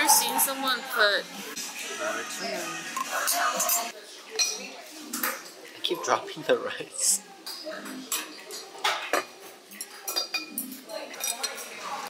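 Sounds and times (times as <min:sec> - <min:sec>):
chopsticks and dishes clinking: 0:03.0 - 0:05.6, 0:07.4 - 0:12.0.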